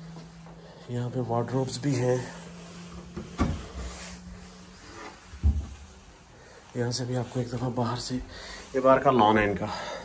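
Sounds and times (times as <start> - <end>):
wardrobe door opening: 3.0 - 4.0.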